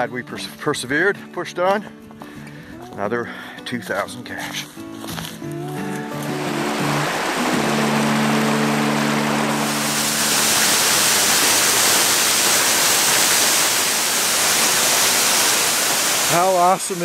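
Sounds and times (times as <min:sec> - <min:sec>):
sustained music chords: 0:06.1 - 0:10.8
water rushing over rocks: 0:06.2 - 0:17.0
waterfall: 0:06.2 - 0:17.0.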